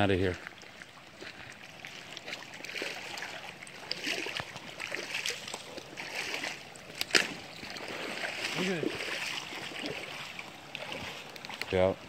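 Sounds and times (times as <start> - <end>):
creek water running: 0.0 - 12.0.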